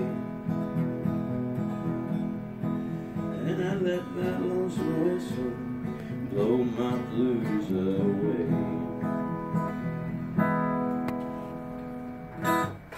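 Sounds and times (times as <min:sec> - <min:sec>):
acoustic guitar strumming: 0:00.0 - 0:12.9
man singing: 0:03.2 - 0:09.3.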